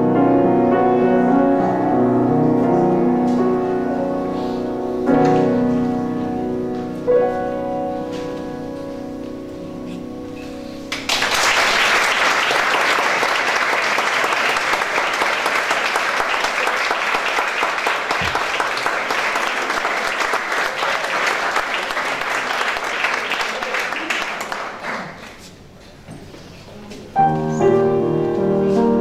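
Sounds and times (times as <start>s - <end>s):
grand piano chord ringing: 0.0s - 11.2s, 27.2s - 29.0s
audience applause: 10.9s - 25.2s.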